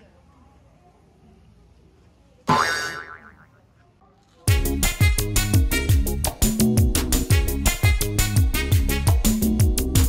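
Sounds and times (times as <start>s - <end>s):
wobbling cartoon sound effect: 2.5s - 3.6s.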